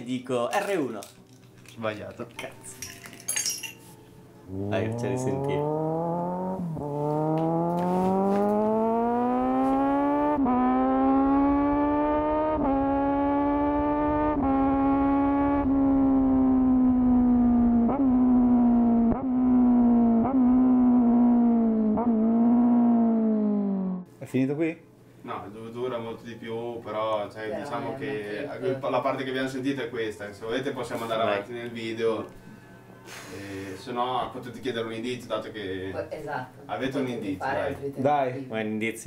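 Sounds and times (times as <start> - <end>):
motorcycle engine accelerating: 4.5 - 24.1
motorcycle throttle blips: 4.5 - 24.1.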